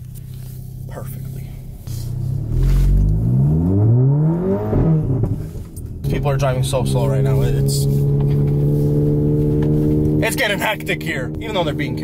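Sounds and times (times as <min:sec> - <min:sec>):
car engine accelerating from inside: 0:00.3 - 0:12.0.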